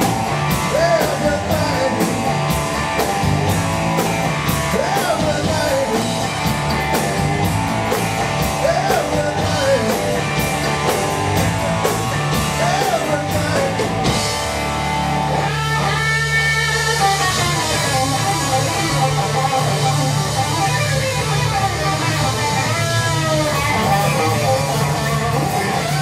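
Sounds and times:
drums: 0:00.0 - 0:26.0
electric bass: 0:00.0 - 0:26.0
electric guitar lead with bent notes: 0:00.0 - 0:26.0.

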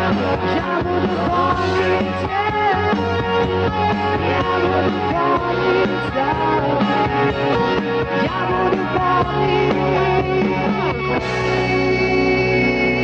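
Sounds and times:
lead electric guitar melody: 0:00.0 - 0:13.0
rock band playing: 0:00.0 - 0:13.0.

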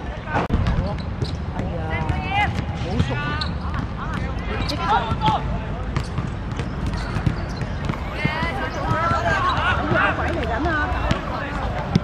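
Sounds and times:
young players shouting: 0:08.0 - 0:11.7.

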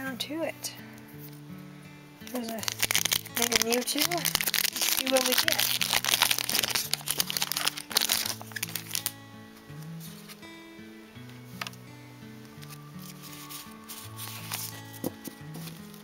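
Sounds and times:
quiet background music: 0:00.0 - 0:16.0
foil wrapper crinkling: 0:02.3 - 0:09.2, 0:12.5 - 0:16.0.

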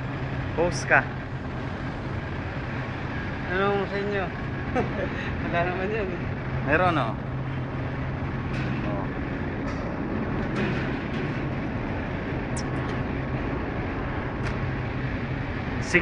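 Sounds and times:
low machine hum: 0:00.0 - 0:16.0.

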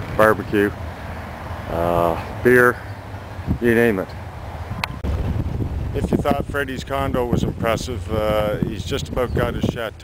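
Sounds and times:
wind buffeting microphone: 0:02.9 - 0:10.0.

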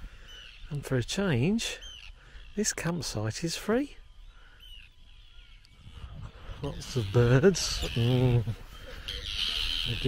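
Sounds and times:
birds calling and chirping: 0:00.0 - 0:10.0.

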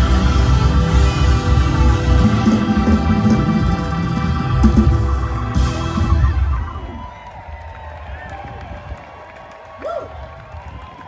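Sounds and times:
crowd din: 0:00.0 - 0:09.0
people whooping: 0:05.5 - 0:11.0.

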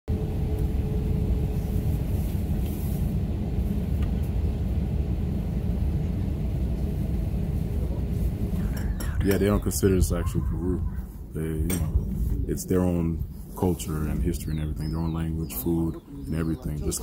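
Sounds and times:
faint hum: 0:00.1 - 0:17.0
jet cabin low rumble: 0:00.1 - 0:17.0.

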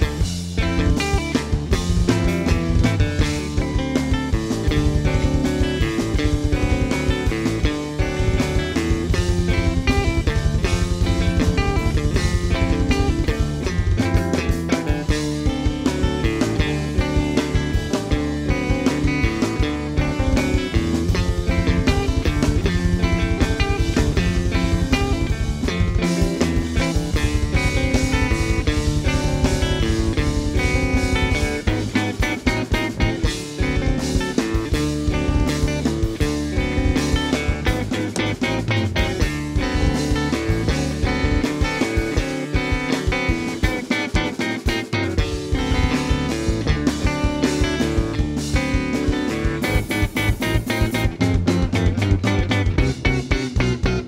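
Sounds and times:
drum kit: 0:00.0 - 0:54.0
electric bass: 0:00.0 - 0:54.0
electric guitar: 0:00.0 - 0:54.0.

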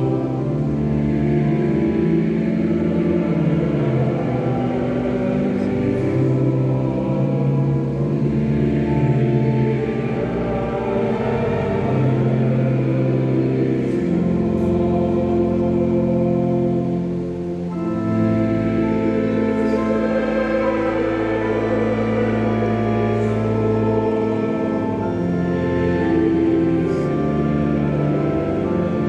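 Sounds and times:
pipe organ chords: 0:00.0 - 0:29.0.

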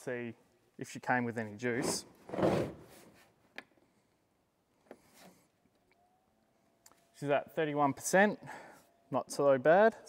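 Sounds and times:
shuffling rub of device: 0:02.5 - 0:03.4
faint steady tone: 0:05.5 - 0:10.0.

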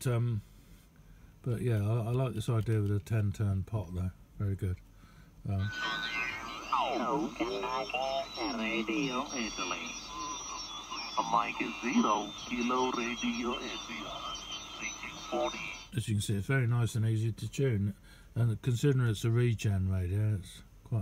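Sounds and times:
garbled radio voices: 0:05.6 - 0:16.0.

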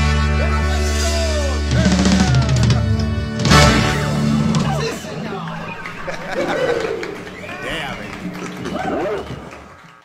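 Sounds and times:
indistinct voices: 0:04.2 - 0:09.7.

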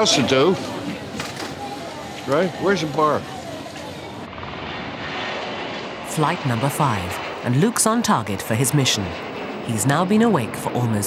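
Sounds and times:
jet engines at takeoff: 0:02.3 - 0:11.0.

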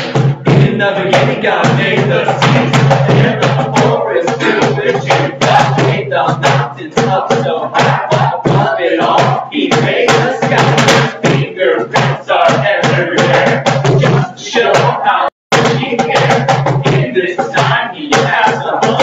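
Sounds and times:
hand-played cajon beat: 0:00.0 - 0:19.0
people singing: 0:00.0 - 0:19.0.

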